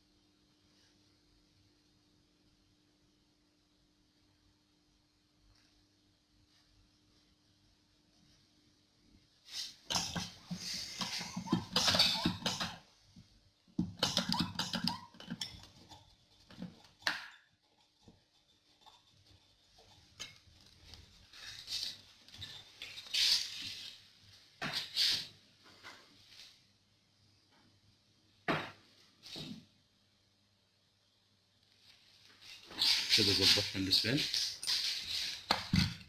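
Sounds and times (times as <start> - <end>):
faint steady hum: 0.0 - 34.4.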